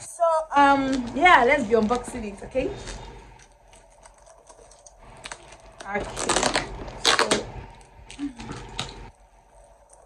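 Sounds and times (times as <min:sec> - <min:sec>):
tape scratching and clicks: 0:00.6 - 0:10.0
packing tape tearing: 0:02.7 - 0:09.1.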